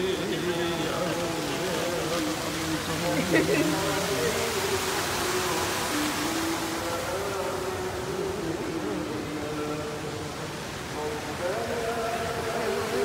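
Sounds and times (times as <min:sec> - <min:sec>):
fountain water jets hissing: 0:00.0 - 0:13.0.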